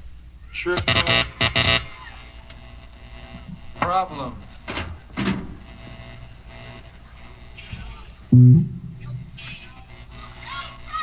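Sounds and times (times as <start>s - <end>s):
low steady hum: 0.0s - 11.0s
amplified buzzing bursts: 0.6s - 11.0s.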